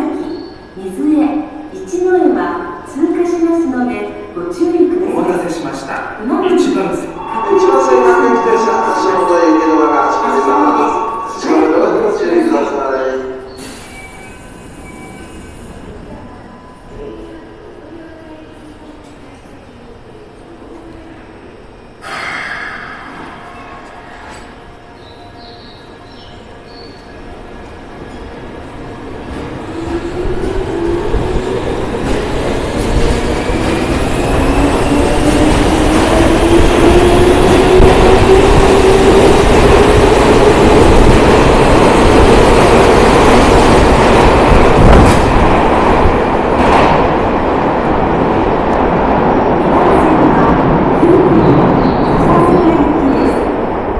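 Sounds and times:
subway train motor whine: 6.9 - 12.9.

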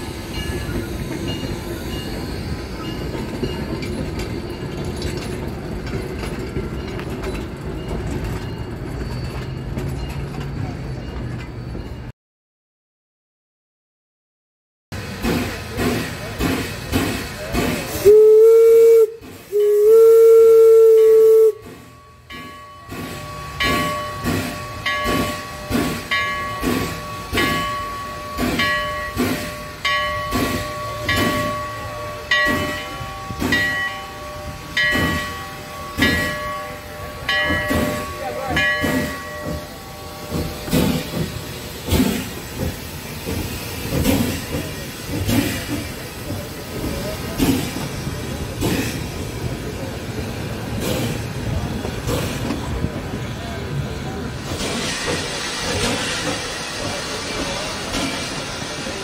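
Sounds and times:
railway cars rolling by: 0.0 - 12.1, 15.0 - 59.0
steam locomotive chuffing: 0.0 - 12.1, 15.0 - 59.0
steam locomotive whistle: 17.9 - 21.9.

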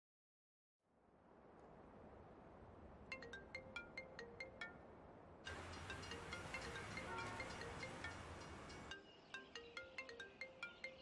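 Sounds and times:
phone ringtone plinking notes: 3.1 - 4.8, 5.5 - 11.0.

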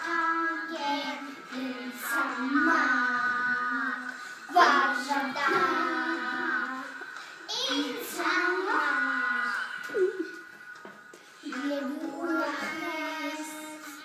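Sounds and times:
young children singing: 0.0 - 10.7, 11.4 - 14.0.

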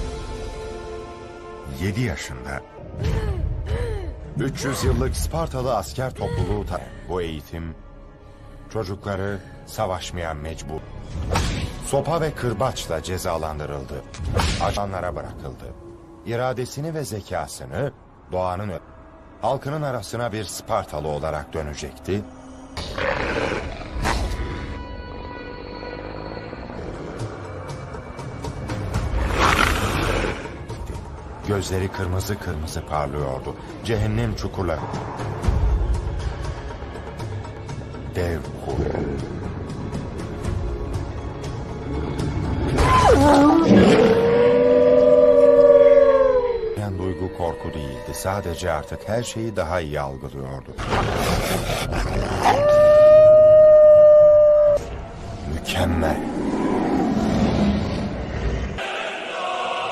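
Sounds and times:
choral music: 0.0 - 59.9
wolf growl: 22.8 - 24.8, 50.8 - 52.9, 55.4 - 58.8.

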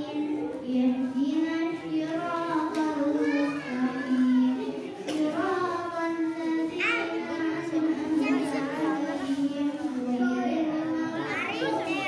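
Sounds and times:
boy chanting into a microphone: 0.0 - 12.0
children's voices: 0.0 - 12.0.

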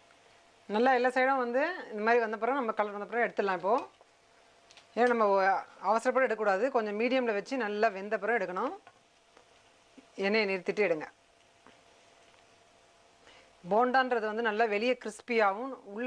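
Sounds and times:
faint sizzle of deep-frying: 0.0 - 13.7
woman talking: 0.7 - 4.0, 5.0 - 8.9, 10.0 - 11.2, 13.7 - 16.0.

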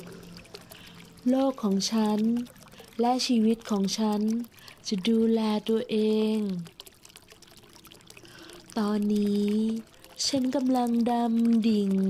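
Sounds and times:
running water: 0.0 - 12.0.

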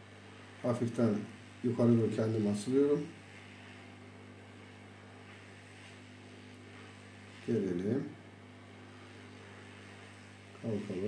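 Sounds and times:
hot air station humming and hissing: 0.0 - 11.0.

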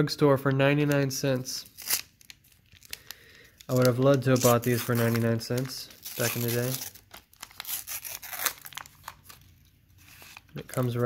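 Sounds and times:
card pack wrapper tearing: 1.6 - 11.0.

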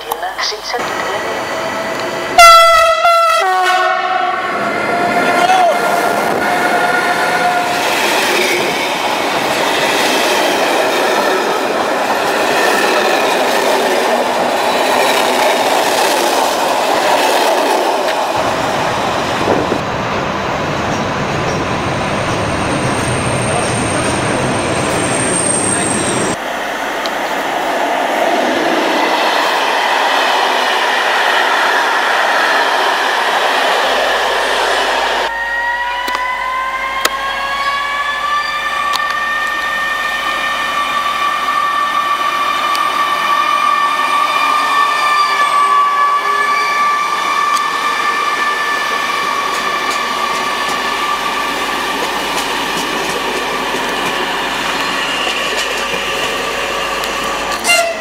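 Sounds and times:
train wheels on rails: 4.5 - 35.3, 40.2 - 58.0.

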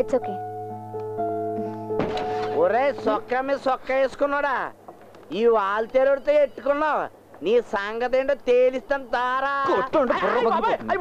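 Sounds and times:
soft sustained keyboard tones: 0.0 - 3.4
thunk: 2.0 - 2.6.

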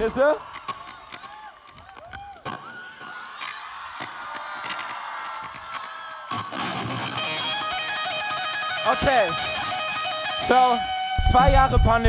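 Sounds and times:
electric guitar through a pa: 6.4 - 12.0.

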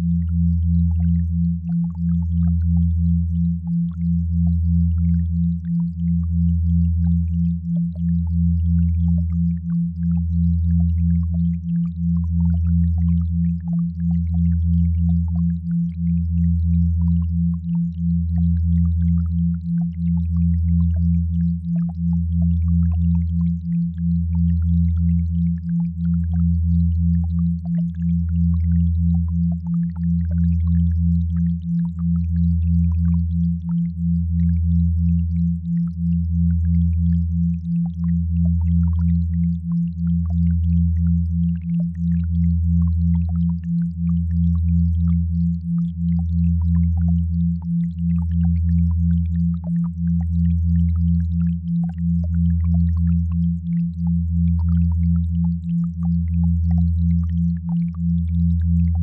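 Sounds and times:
deep pulsing hum: 0.0 - 59.0
faint crackle: 0.0 - 59.0.

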